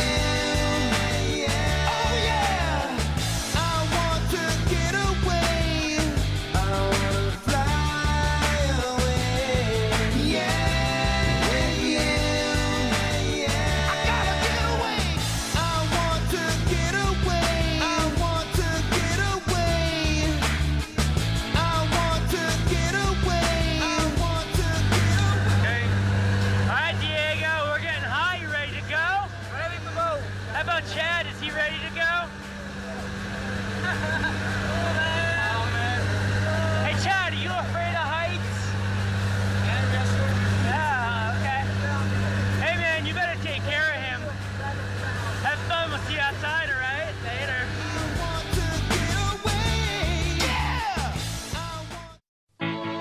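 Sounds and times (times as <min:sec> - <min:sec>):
people talking and calling: 0:08.8 - 0:19.8, 0:21.6 - 0:51.1
plane engines droning: 0:21.6 - 0:48.8.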